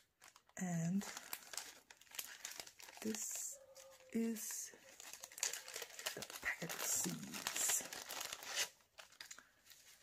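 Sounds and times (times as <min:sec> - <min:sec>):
paper packets rustling: 0:00.0 - 0:10.0
plastic bag crinkling: 0:00.0 - 0:10.0.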